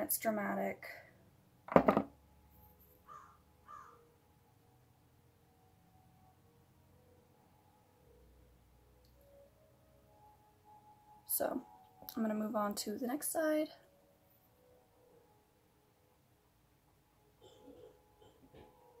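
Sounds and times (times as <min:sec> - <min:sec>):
crow cawing: 0:03.1 - 0:04.0.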